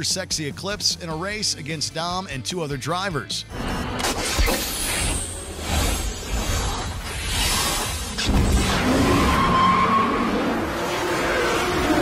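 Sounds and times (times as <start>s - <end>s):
music: 0.0s - 6.1s
whoosh: 3.8s - 9.4s
car engines running hard: 10.0s - 12.0s.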